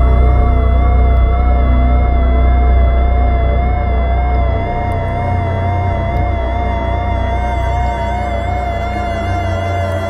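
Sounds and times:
deep low drone: 0.0s - 10.0s.

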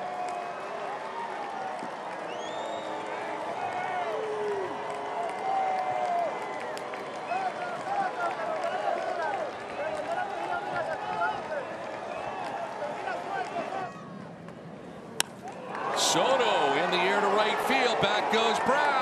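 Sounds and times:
shouts from the stands: 0.0s - 14.2s, 15.6s - 19.0s
light applause: 0.0s - 14.3s, 15.4s - 19.0s
hum of crowd voices: 6.9s - 19.0s.

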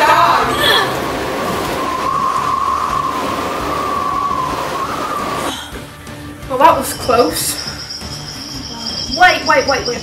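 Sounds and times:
rushing roar with wavering whine: 0.0s - 5.5s.

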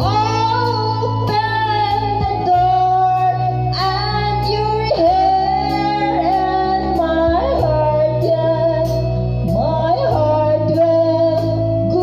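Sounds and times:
backing track with bass and beat: 0.0s - 12.0s
woman singing karaoke: 0.0s - 12.0s.

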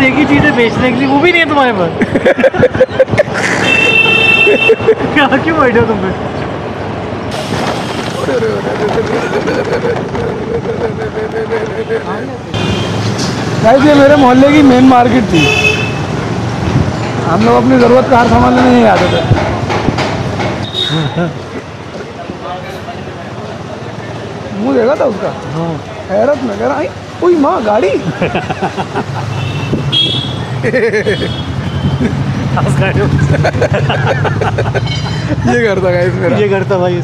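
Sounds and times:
street traffic noise: 0.0s - 37.0s.

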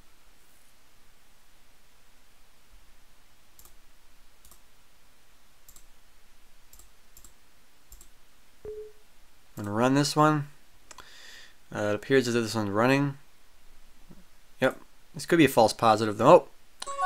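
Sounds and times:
faint steady hiss: 0.0s - 17.0s.

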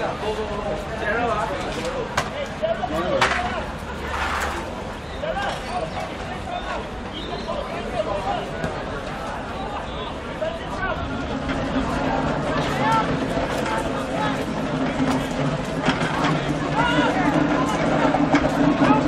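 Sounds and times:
crowd hubbub: 0.0s - 19.0s
players shouting: 16.2s - 18.1s.

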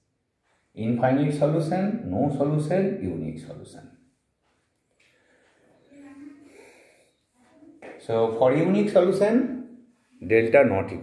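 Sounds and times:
man breathing faintly: 5.0s - 7.4s.

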